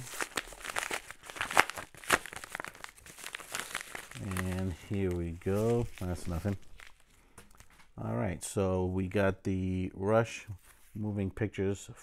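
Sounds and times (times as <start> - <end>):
paper envelope tearing: 0.0 - 7.0.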